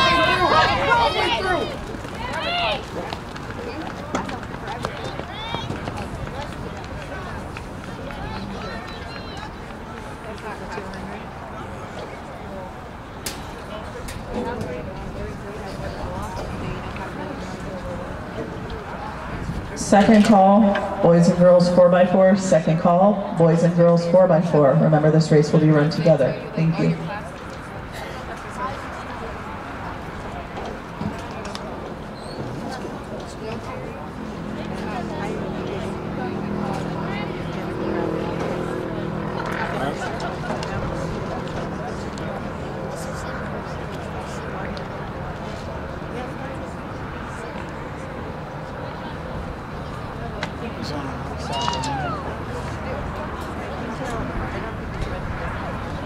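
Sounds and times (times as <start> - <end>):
distant people talking: 0.0 - 56.0
indistinct chatter of spectators: 0.0 - 56.0.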